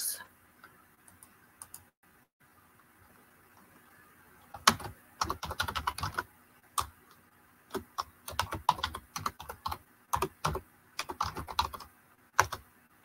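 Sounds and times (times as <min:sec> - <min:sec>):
computer keyboard typing: 0:04.5 - 0:07.0, 0:07.7 - 0:12.6.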